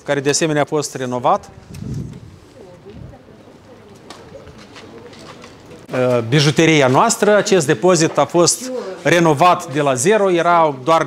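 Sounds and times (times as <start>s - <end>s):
distant voices murmuring: 1.4s - 6.2s.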